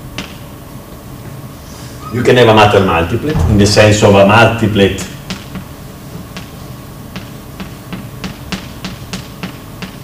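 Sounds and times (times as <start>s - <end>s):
chalk tapping on a blackboard: 7.1s - 10.0s.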